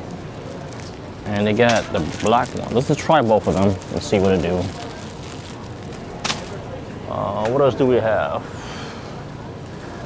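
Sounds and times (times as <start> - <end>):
supermarket background noise: 0.0 - 10.0.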